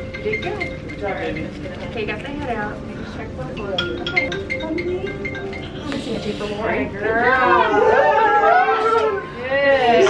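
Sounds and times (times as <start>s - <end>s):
high-pitched human cry: 7.3s - 9.4s.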